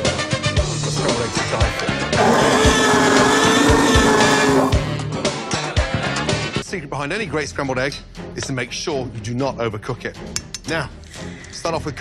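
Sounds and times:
dinosaur roar: 0:02.2 - 0:04.9.

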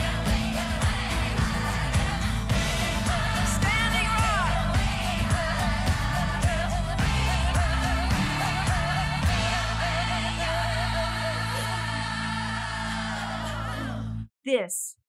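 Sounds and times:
bass and drums: 0:00.0 - 0:11.2
person singing with vibrato: 0:00.0 - 0:14.7.

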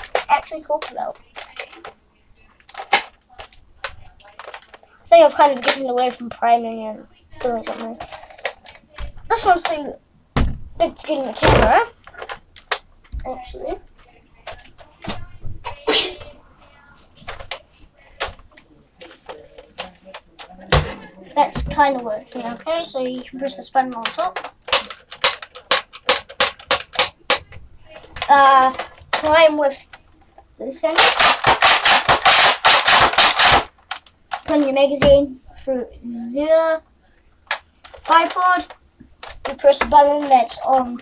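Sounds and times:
plastic knocks and clicks: 0:02.6 - 0:06.8, 0:10.4 - 0:13.3, 0:17.2 - 0:30.1, 0:31.0 - 0:35.2, 0:37.4 - 0:41.0
toy blaster clacking: 0:23.9 - 0:27.5, 0:30.9 - 0:34.7, 0:37.5 - 0:40.8.

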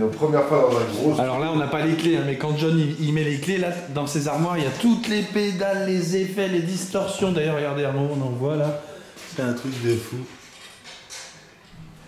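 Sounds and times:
man speaking: 0:00.0 - 0:10.4.

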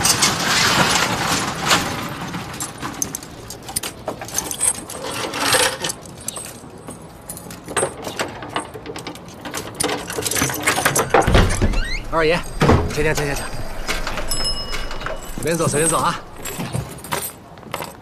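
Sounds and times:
keys jangling: 0:02.6 - 0:07.8, 0:08.6 - 0:18.0.

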